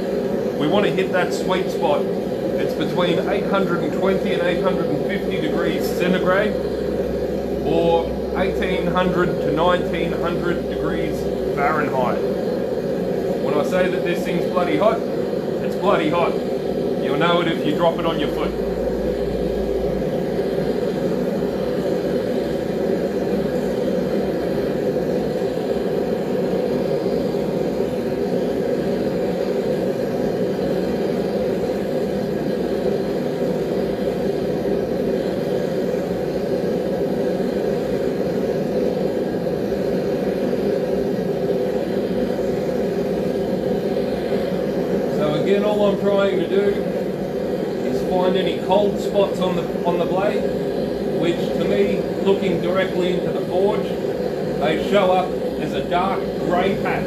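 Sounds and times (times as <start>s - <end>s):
forge rushing noise: 0.0s - 57.0s.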